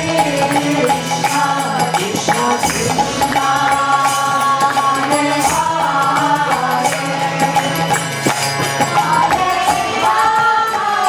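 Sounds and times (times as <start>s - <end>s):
harmonium chords: 0.0s - 11.0s.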